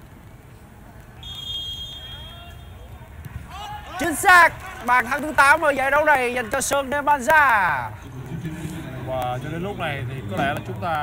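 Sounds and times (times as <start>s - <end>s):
referee's whistle blast: 1.2s - 2.8s.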